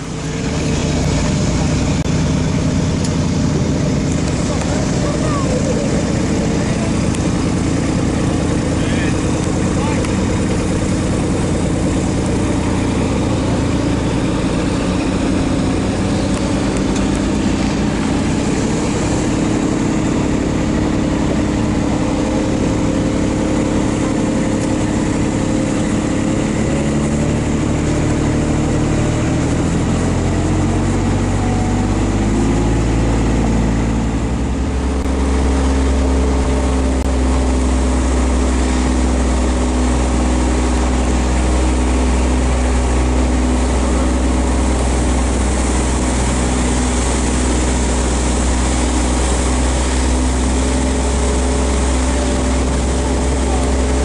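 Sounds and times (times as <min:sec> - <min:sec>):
utility vehicle engine running: 0:00.0 - 0:54.0.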